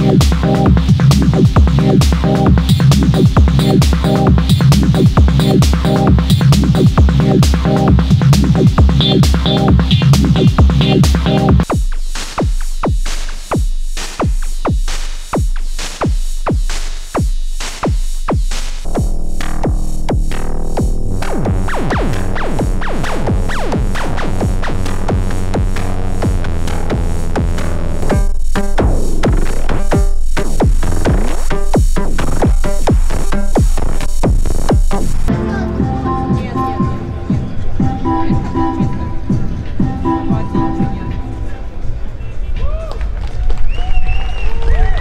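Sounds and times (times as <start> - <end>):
drum machine strikes: 0.0 - 41.2
dense droning layer: 35.1 - 43.3.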